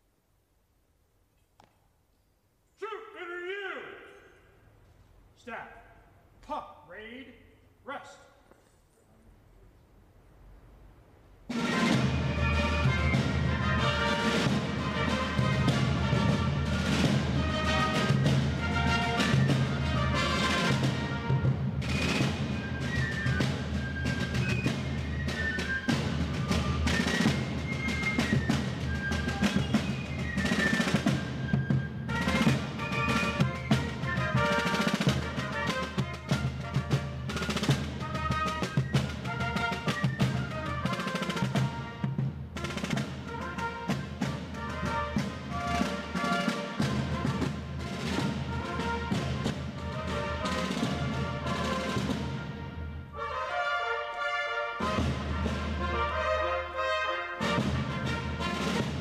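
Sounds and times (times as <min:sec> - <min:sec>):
fifes playing a march: 0:11.5 - 0:59.0
snare drums: 0:11.5 - 0:59.0.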